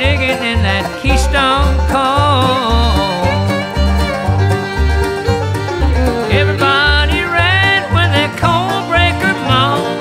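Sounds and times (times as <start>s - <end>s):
bass notes: 0.0s - 10.0s
bluegrass band playing: 0.0s - 10.0s.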